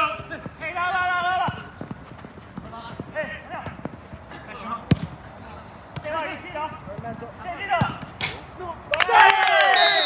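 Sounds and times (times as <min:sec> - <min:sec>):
running footsteps on artificial turf: 0:00.0 - 0:08.1
football being kicked: 0:01.4 - 0:03.8, 0:04.9 - 0:05.2, 0:06.0 - 0:08.3.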